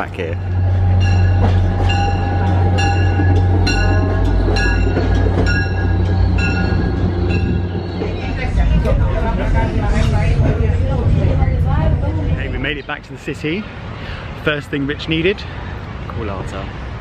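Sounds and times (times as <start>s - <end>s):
train bell ringing: 0.0s - 8.7s
diesel train rumble: 0.0s - 17.0s
train running along track: 0.0s - 17.0s.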